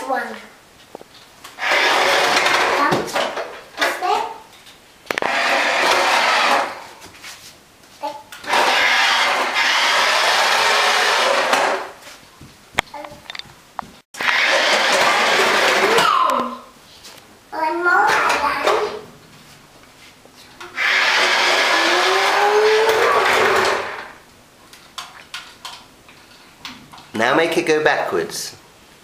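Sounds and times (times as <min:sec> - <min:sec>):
toy car electric motor whirring: 0:01.6 - 0:02.9, 0:05.2 - 0:06.8, 0:08.4 - 0:12.0, 0:14.2 - 0:16.4, 0:20.7 - 0:24.1.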